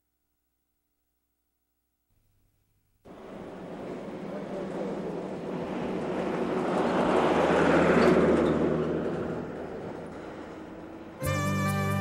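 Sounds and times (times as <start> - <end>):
truck driving past: 3.1 - 12.0.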